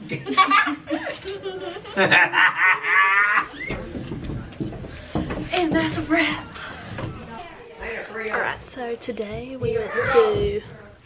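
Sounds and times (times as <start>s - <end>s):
high-pitched laughter and giggling: 0.1s - 3.7s.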